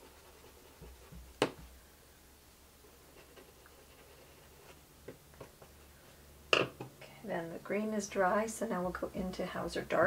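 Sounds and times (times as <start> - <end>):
paint brushes scratching: 0.0 - 1.4, 2.8 - 4.8.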